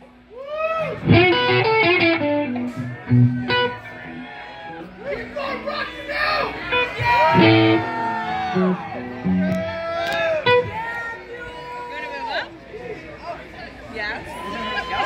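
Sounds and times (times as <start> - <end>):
crowd shouting and talking: 0.0 - 15.0
electric guitar notes: 0.8 - 5.0, 6.6 - 10.8
bass guitar notes: 0.9 - 5.6, 6.6 - 10.8.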